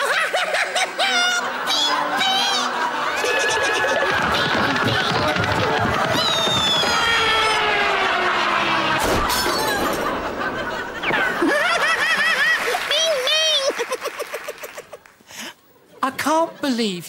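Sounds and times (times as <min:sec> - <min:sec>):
voices shouting: 0:01.4 - 0:09.0
comedy glass crash: 0:09.0 - 0:10.3.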